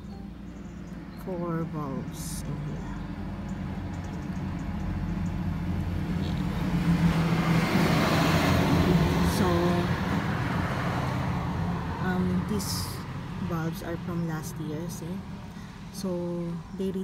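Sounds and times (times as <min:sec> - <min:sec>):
vehicle driving past: 0:00.3 - 0:14.2.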